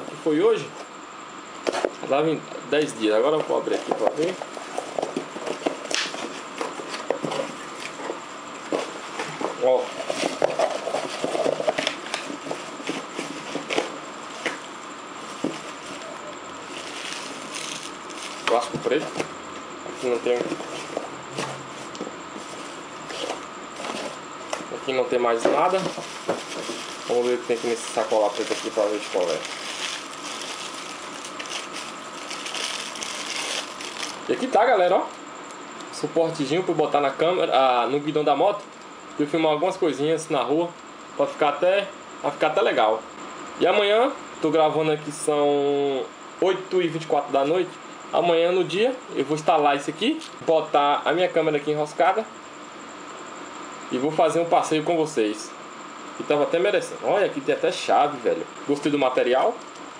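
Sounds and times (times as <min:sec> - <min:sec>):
plastic bag rustling: 0:08.8 - 0:19.2, 0:20.0 - 0:34.4
steady hiss: 0:19.8 - 0:35.3.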